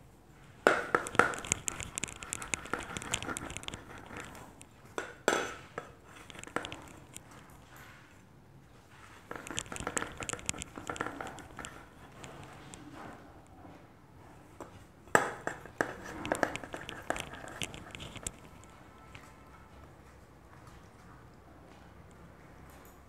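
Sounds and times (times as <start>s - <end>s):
metal pipe clicking on wood: 9.3s - 11.8s.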